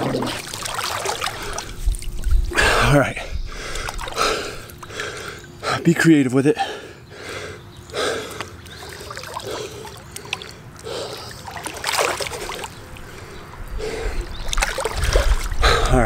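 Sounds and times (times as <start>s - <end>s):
pool water splashing: 0.0s - 2.8s, 3.7s - 5.5s, 8.0s - 15.9s.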